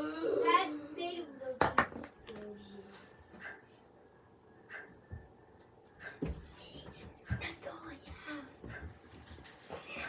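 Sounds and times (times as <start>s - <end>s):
girl's voice: 0.0s - 3.0s, 6.4s - 8.9s.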